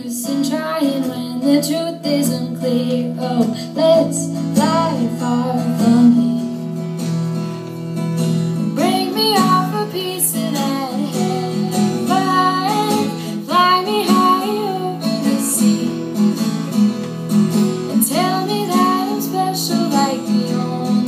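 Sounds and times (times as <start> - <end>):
woman singing: 0.0 - 6.8, 8.7 - 17.0, 17.8 - 21.0
acoustic guitar strumming: 0.0 - 21.0.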